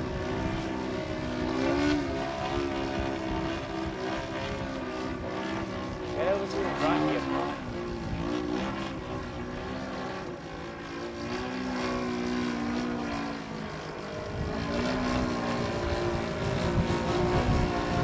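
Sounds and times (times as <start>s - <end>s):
model plane engine and propeller: 0.0s - 18.0s.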